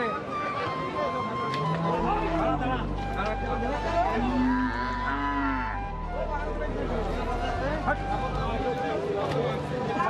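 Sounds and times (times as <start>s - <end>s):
cow mooing: 4.1s - 5.8s.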